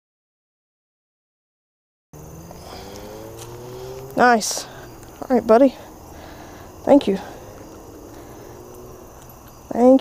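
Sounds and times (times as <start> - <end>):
car engine accelerating: 2.2 - 9.9.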